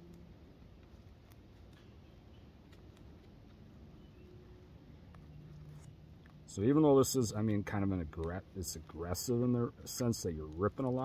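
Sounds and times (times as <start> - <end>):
roots and soil tearing: 5.1 - 11.0.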